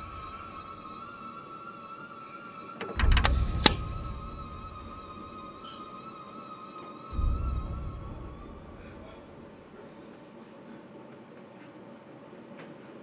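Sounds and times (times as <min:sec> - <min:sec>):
high wavering drone tone: 0:00.0 - 0:09.8
sharp clicks: 0:02.8 - 0:03.8
deep low boom: 0:03.1 - 0:05.4, 0:07.1 - 0:09.8.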